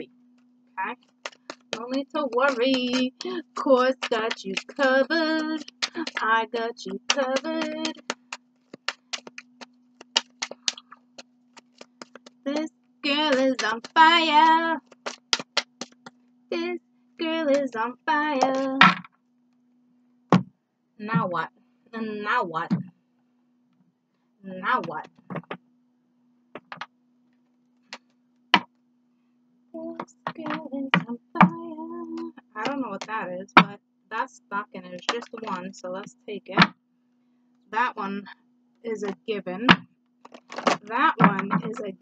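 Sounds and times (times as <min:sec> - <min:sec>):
steady low hum: 0:00.0 - 0:40.0
cards shuffling clicks: 0:01.0 - 0:06.2, 0:07.0 - 0:12.4, 0:14.8 - 0:16.2, 0:40.2 - 0:40.9
card deck taps on wooden table: 0:18.8 - 0:19.1, 0:25.3 - 0:25.6, 0:26.6 - 0:26.9.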